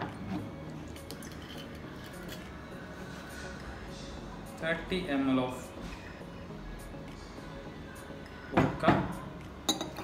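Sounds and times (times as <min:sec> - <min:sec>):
glassware clinking: 0:09.7 - 0:10.0.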